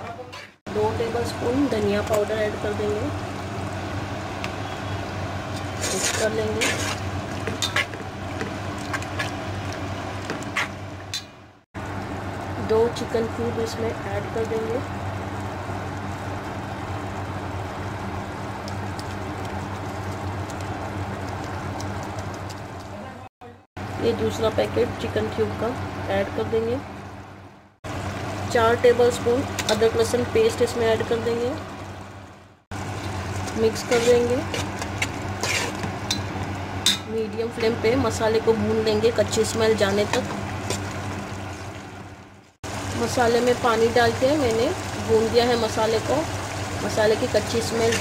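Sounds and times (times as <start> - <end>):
low steady hum: 0.0 - 48.0
food sizzling in a pot: 0.8 - 11.0, 32.7 - 48.0
metal spoon scraping pot: 5.7 - 8.0, 33.8 - 36.2.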